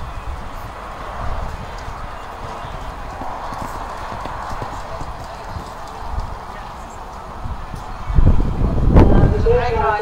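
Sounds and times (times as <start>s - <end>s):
horse hoofbeats on sand: 1.6s - 7.2s.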